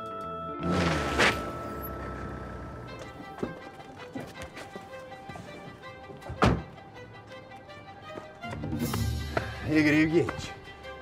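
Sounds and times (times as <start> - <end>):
tense background music: 0.0 - 11.0.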